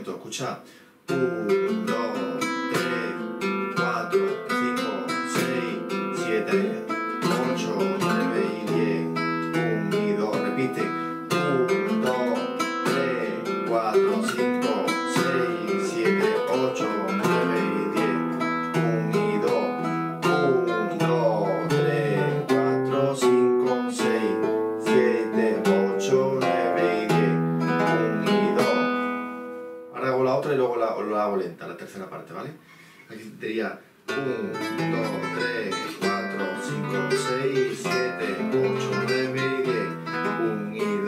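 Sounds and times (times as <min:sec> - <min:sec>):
flamenco guitar playing: 0:00.7 - 0:30.6, 0:34.1 - 0:41.0.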